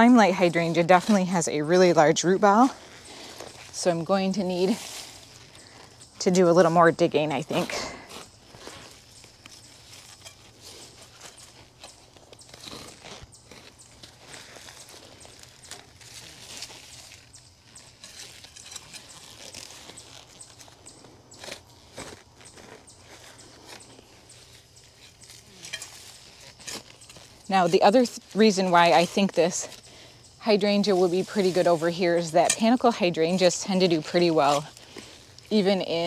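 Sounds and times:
spade digging in dry soil: 0.0s - 36.0s.

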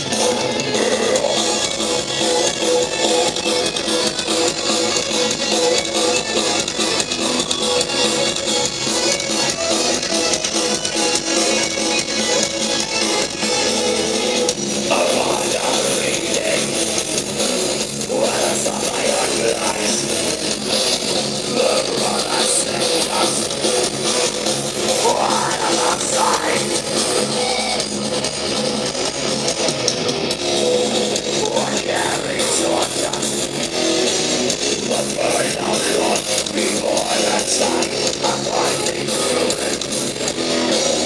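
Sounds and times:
metal band playing live: 0.0s - 41.0s.

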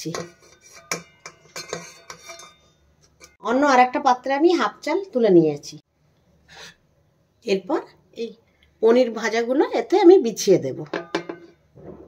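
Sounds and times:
metal strainer knocking on pot: 10.9s - 11.5s.

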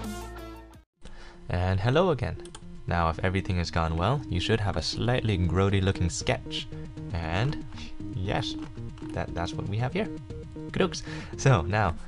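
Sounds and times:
person speaking: 1.5s - 12.0s.

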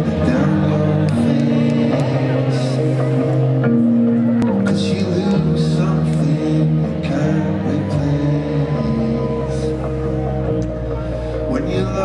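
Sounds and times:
live band slow held chords: 0.0s - 12.0s
voices over music: 0.0s - 12.0s.

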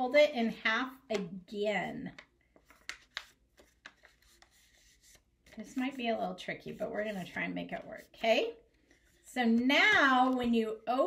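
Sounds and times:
paper crackling: 2.1s - 6.0s
paper rustling: 2.5s - 9.3s.

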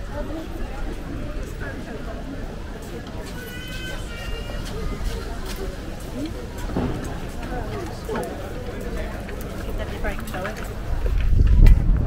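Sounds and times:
passers-by talking: 0.0s - 12.0s.

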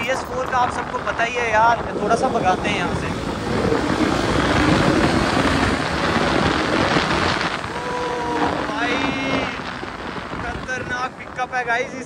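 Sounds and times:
wind rush over microphone: 0.0s - 12.0s
motorcycle engine accelerating hard: 1.8s - 11.3s.

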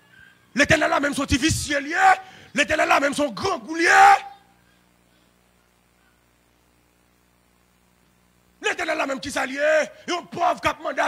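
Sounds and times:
faint steady hum: 0.0s - 11.0s
man shouting through microphone: 0.6s - 4.5s, 8.6s - 11.0s.

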